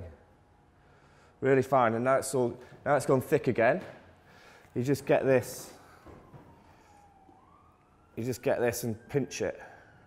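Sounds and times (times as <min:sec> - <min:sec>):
faint siren wailing: 0:00.0 - 0:10.0.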